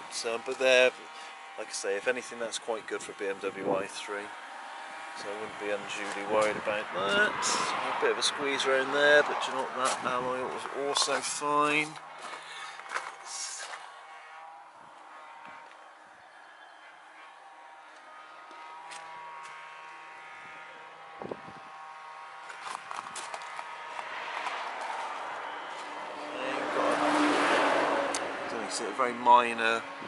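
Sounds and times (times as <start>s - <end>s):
vehicle tyre and road noise: 0.0s - 19.6s, 22.2s - 30.0s.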